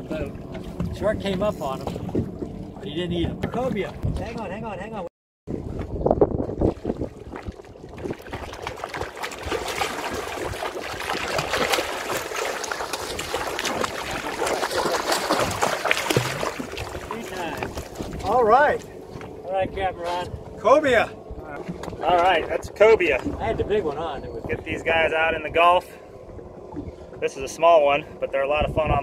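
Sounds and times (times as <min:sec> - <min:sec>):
wind on microphone: 0:05.5 - 0:12.2, 0:13.0 - 0:18.6, 0:21.2 - 0:27.3, 0:28.2 - 0:29.0
fish splashing in water: 0:06.5 - 0:18.2.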